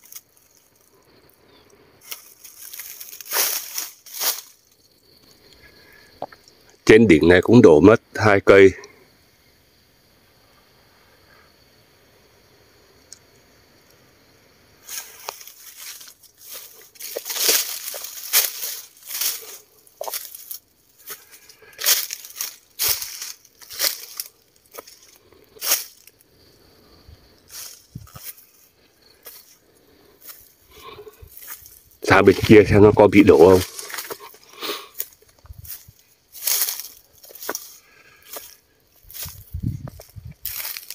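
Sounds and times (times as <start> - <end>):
footsteps crunching dry leaves: 2.0 - 4.8, 14.8 - 26.2, 27.4 - 29.6, 30.2 - 40.9.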